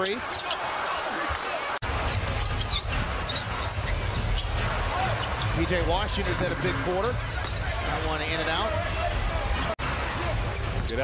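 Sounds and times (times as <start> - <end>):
shoe squeaks: 2.2 - 4.6, 10.5 - 11.0.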